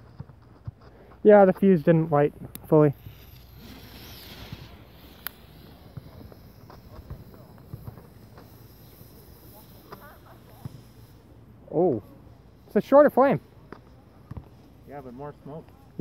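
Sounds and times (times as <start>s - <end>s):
low outdoor background noise: 0.0s - 16.0s
smoke flare hissing: 0.9s - 16.0s.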